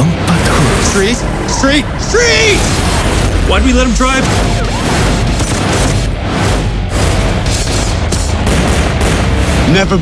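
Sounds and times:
action trailer music: 0.0s - 10.0s
gunfire bursts: 2.6s - 9.8s.

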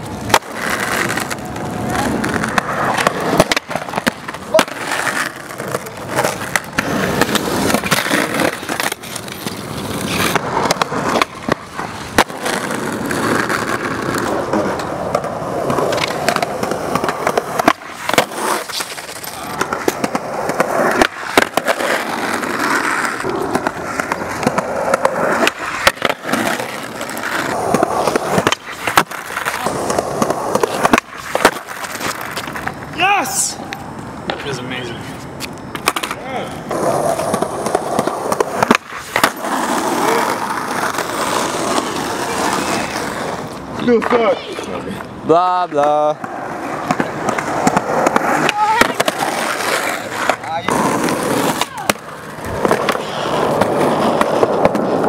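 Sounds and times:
skateboard clacking on pavement: 0.0s - 55.0s
skateboard wheels rolling on asphalt: 0.0s - 55.0s.

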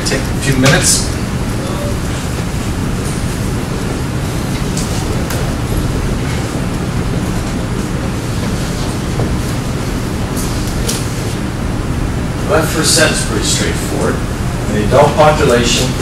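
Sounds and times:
room hum and hiss: 0.0s - 16.0s.

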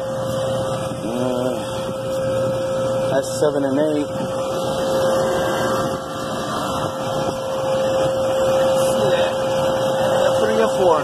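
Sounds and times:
refrigeration machinery hum: 0.0s - 11.0s.

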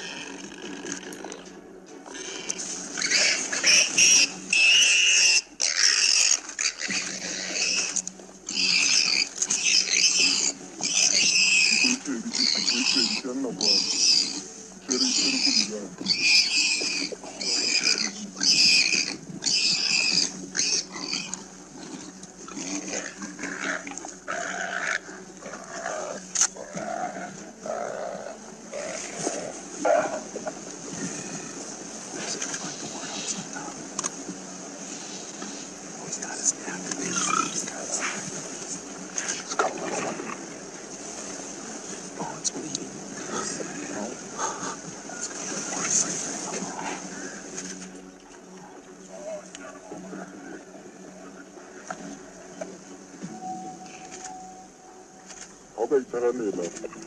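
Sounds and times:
animal squealing: 2.1s - 30.2s, 37.0s - 38.1s.

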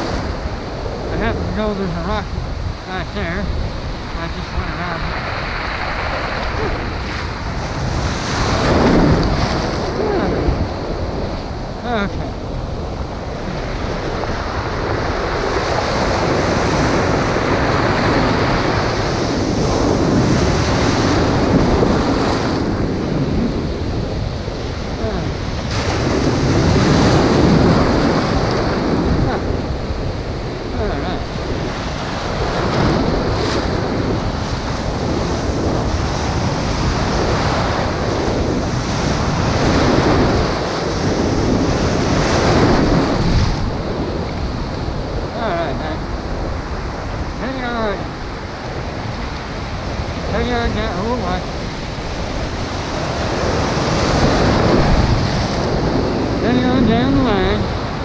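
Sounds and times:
surf washing against boulders: 0.0s - 58.0s
wind buffeting microphone: 0.0s - 58.0s.

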